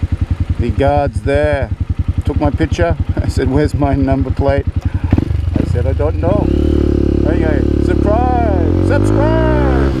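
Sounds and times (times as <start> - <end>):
motorcycle engine running: 0.0 - 10.0
person talking: 0.6 - 4.7, 7.2 - 10.0.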